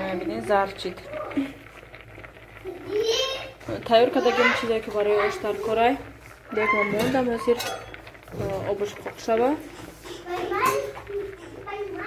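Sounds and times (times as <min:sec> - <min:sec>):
young child talking: 0:02.6 - 0:05.6, 0:10.2 - 0:12.0.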